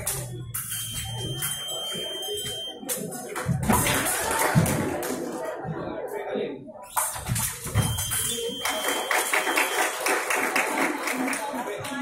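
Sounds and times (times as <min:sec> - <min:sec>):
scoring box high beep: 0:00.6 - 0:02.8, 0:07.8 - 0:09.8.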